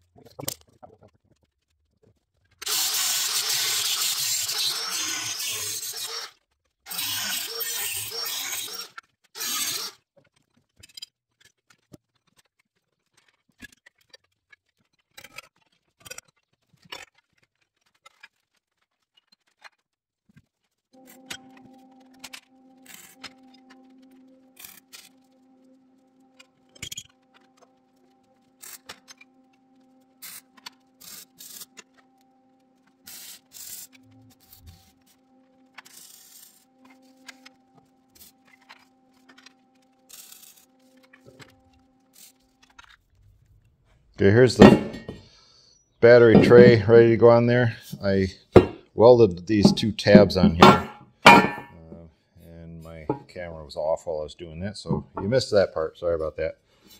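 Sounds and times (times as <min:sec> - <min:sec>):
angle grinder cutting steel: 0:02.6 - 0:06.3, 0:06.9 - 0:09.9
knocks and clanks of steel: 0:44.6 - 0:45.2, 0:46.2 - 0:46.9, 0:48.6 - 0:48.8, 0:49.6 - 0:51.8, 0:54.9 - 0:55.3.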